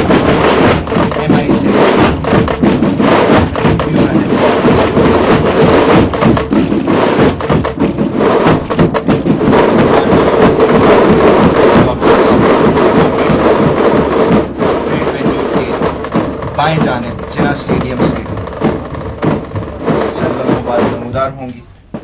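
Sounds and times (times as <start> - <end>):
continuous drumming: 0.0 - 22.0.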